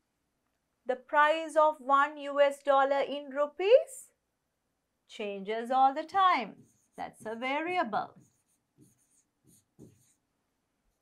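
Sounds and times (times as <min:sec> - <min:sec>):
pen scratching on board: 0:06.1 - 0:11.0.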